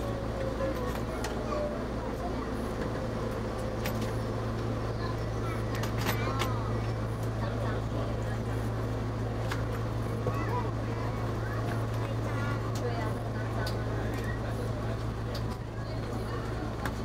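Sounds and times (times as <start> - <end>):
diesel engine low hum: 0.0 - 17.0.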